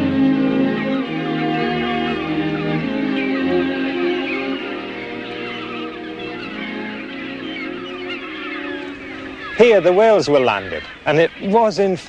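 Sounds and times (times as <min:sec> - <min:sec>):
soft background music: 0:00.0 - 0:11.9
gulls calling: 0:00.0 - 0:12.0.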